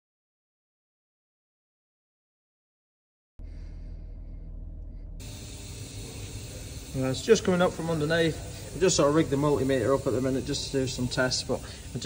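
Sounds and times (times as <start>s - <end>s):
low workshop hum: 3.4s - 12.0s
hiss: 5.2s - 12.0s.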